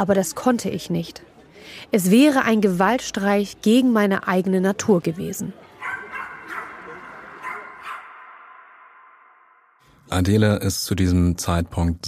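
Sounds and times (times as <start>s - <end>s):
dogs barking: 5.7s - 8.7s.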